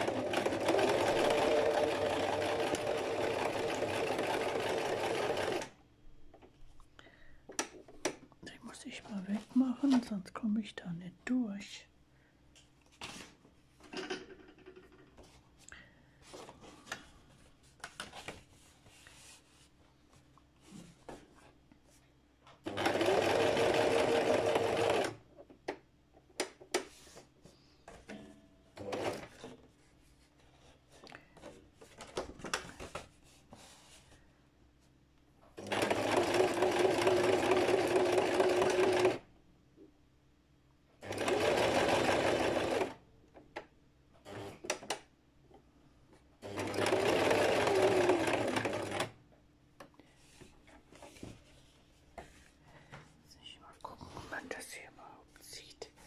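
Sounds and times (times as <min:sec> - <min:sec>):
sewing machine stitching paper: 0:00.0 - 0:05.7, 0:22.6 - 0:25.2, 0:28.8 - 0:29.5, 0:35.6 - 0:39.2, 0:41.0 - 0:43.0, 0:46.4 - 0:49.2.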